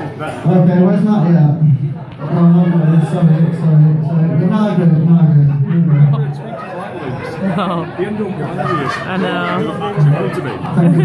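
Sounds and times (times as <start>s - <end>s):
people talking over one another: 2.4s - 11.0s.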